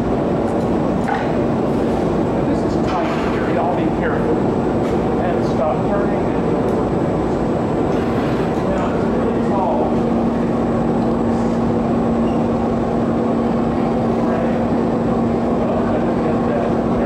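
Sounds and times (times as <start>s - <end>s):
gas furnace and ventilation noise: 0.0s - 17.0s.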